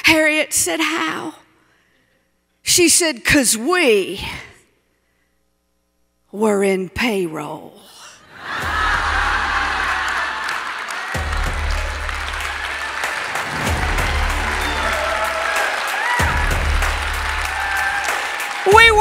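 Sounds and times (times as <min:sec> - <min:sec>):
audience applause: 0:08.6 - 0:19.0
backing music with deep bass: 0:11.2 - 0:19.0.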